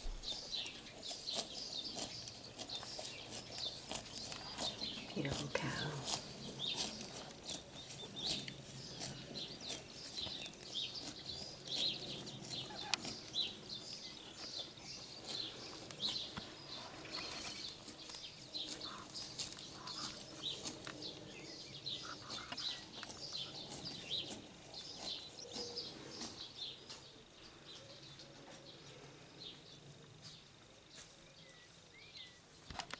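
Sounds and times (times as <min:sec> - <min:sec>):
cow cropping grass: 0:00.0 - 0:27.2
small birds chirping: 0:00.0 - 0:32.9.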